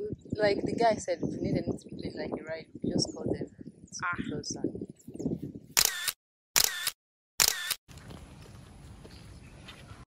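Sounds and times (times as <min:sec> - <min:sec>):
camera shutter clicks: 0:05.8 - 0:07.8.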